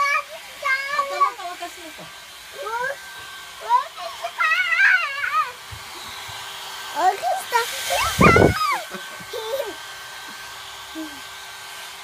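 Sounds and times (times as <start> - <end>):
hair dryer running: 0.0 - 12.0
child squealing: 4.0 - 5.6, 7.8 - 9.8.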